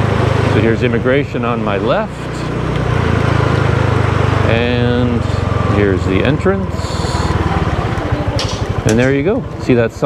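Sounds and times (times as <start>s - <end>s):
scooter engine running: 0.0s - 10.0s.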